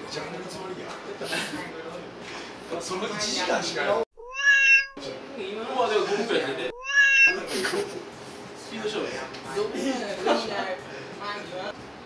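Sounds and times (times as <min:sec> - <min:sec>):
cat meow sound effect: 0:04.2 - 0:05.0, 0:06.7 - 0:07.5
men chatting and laughing: 0:07.3 - 0:11.3.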